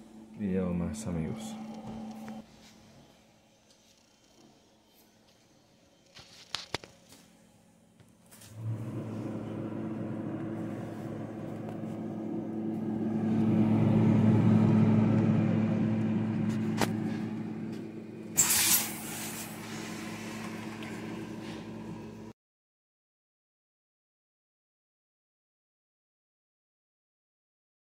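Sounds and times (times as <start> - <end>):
refrigerator humming: 0.0 - 2.4, 8.2 - 22.3.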